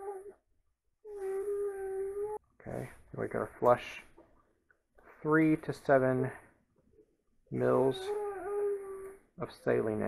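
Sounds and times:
young child moaning: 0:00.0 - 0:00.4, 0:01.1 - 0:02.4, 0:07.8 - 0:09.3.

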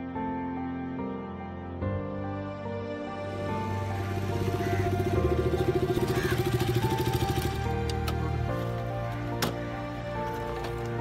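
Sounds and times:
soft background music: 0:00.0 - 0:11.0
motorcycle engine running: 0:03.3 - 0:08.9.

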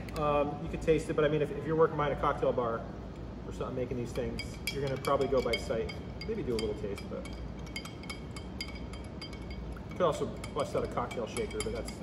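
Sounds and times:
spoon clinking against glass: 0:04.2 - 0:12.0.

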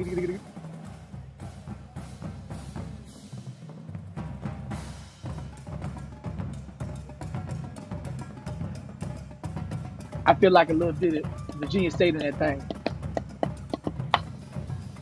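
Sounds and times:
marching drumline playing: 0:00.0 - 0:15.0.

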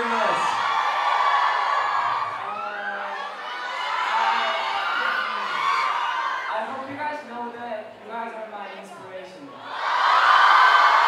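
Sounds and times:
crowd screaming and cheering: 0:00.0 - 0:06.8, 0:09.6 - 0:11.0.

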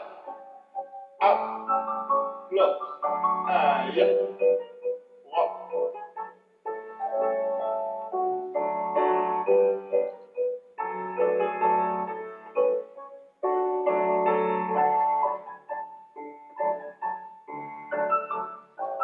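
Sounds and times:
piano playing chords and melody: 0:00.0 - 0:19.0.

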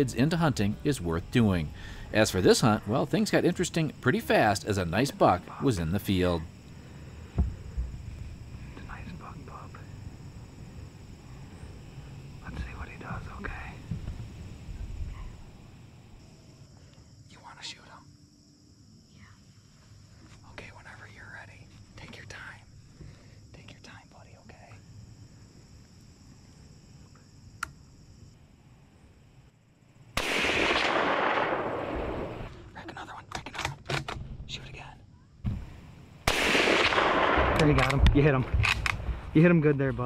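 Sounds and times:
low whispering: 0:08.5 - 0:10.0, 0:11.1 - 0:13.9
hunting gun shot: 0:30.2 - 0:32.5, 0:36.2 - 0:39.2
rifle action clicks: 0:36.3 - 0:39.0.

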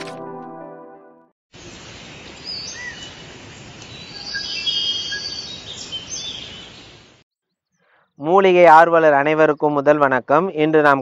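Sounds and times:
bird chirps: 0:03.9 - 0:08.1.

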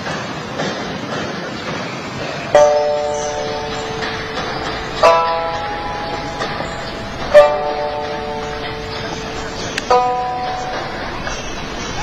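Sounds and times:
steady hiss: 0:00.0 - 0:12.0
ringing chord: 0:02.6 - 0:12.0.

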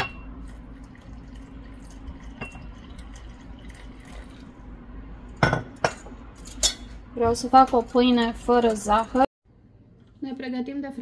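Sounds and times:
water pouring into bowl: 0:00.4 - 0:04.6.

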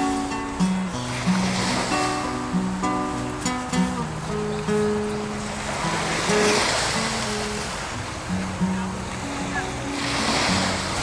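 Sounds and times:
surf washing on shore: 0:00.0 - 0:11.0.

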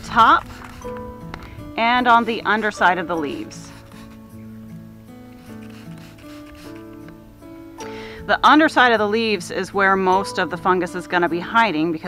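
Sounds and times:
soft music of held notes: 0:00.0 - 0:12.0
leaves rustling: 0:02.0 - 0:07.0.

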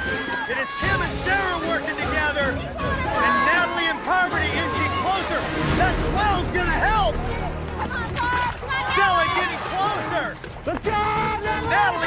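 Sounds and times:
background music: 0:00.0 - 0:12.0
people shouting and cheering: 0:00.0 - 0:12.0.

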